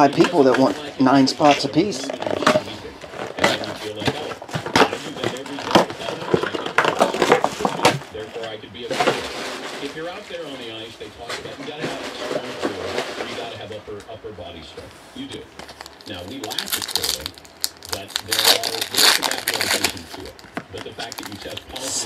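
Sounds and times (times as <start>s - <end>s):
indistinct background talk: 0.0s - 22.0s.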